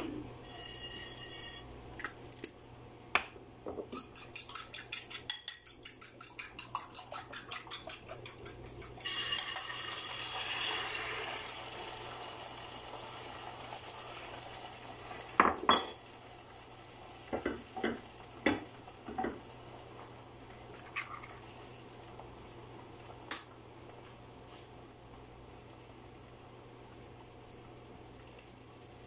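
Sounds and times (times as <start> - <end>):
egg sizzling in oiled pan: 0.4 - 1.7, 3.9 - 29.0
fork beating eggs in bowl: 3.8 - 11.6
fork clinking against bowl: 4.0 - 9.7.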